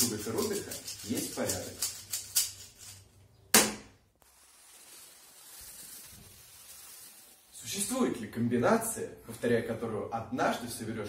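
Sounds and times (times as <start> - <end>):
loud sharp crack: 3.5 - 4.0.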